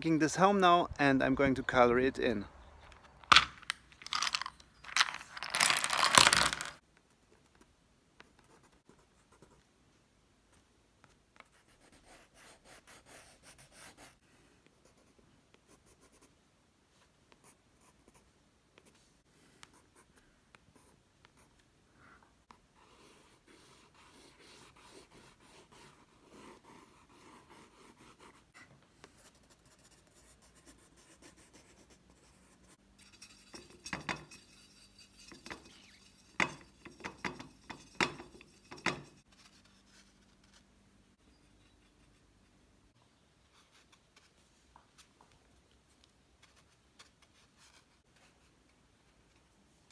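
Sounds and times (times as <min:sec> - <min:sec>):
pencil scratching on paper: 0:11.4 - 0:14.2, 0:22.8 - 0:40.6.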